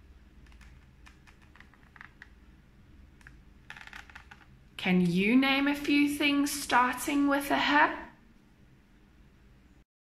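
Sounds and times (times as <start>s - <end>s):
low steady hum: 0.0s - 9.8s.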